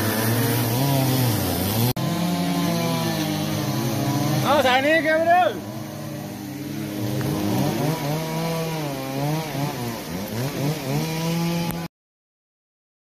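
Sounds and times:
chainsaw revving: 0.0 - 11.9.

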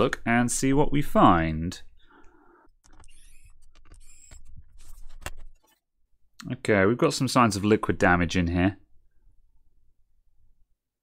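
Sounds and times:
electric screwdriver whirring: 2.9 - 4.5.

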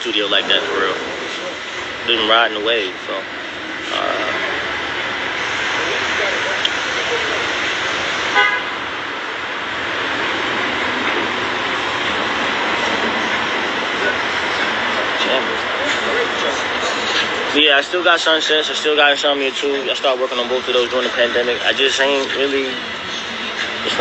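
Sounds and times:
road traffic noise: 0.0 - 24.0
car horn toot: 8.3 - 8.9.

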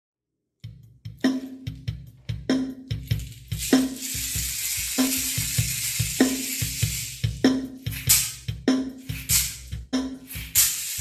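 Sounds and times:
high hissing rustle: 3.2 - 8.4, 10.3 - 11.0.

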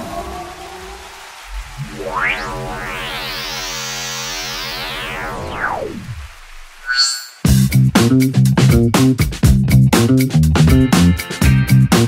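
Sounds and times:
synth chord with filter sweep: 1.7 - 6.9.

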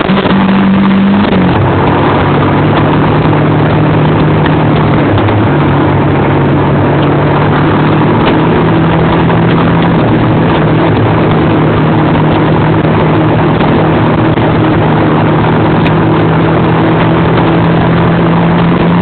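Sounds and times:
atv engine running: 0.0 - 19.0
wind rushing: 0.0 - 19.0.

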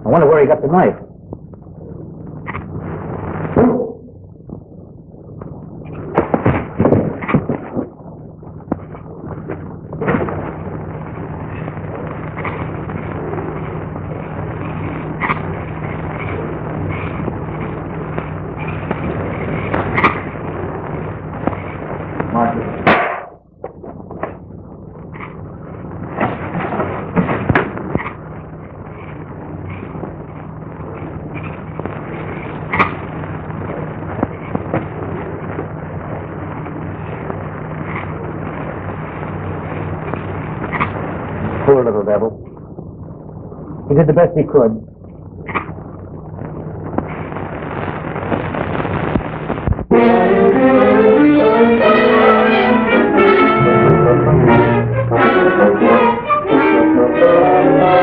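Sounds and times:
film hiss and low hum: 0.0 - 58.0
crackle and sharp pops: 0.4 - 49.9.

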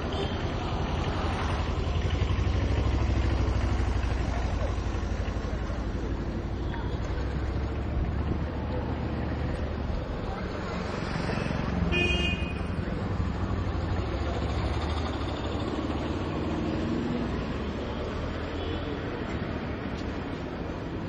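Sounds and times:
street traffic rumble: 0.0 - 21.0.

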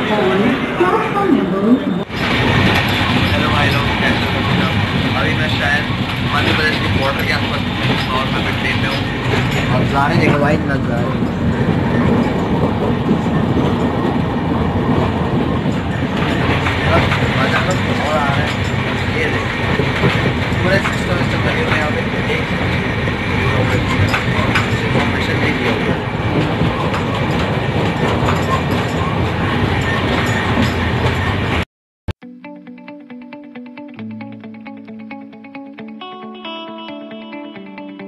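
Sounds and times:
voices: 0.0 - 14.2, 15.7 - 30.1
train rumble: 0.0 - 31.6
wheels clattering on rail joints: 2.1 - 31.6.

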